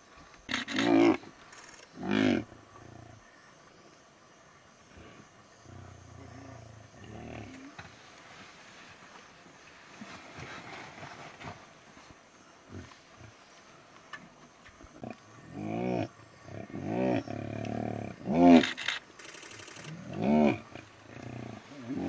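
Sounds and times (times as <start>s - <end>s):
lions growling and snarling: 1.9s - 3.4s, 4.9s - 7.8s, 14.9s - 22.0s.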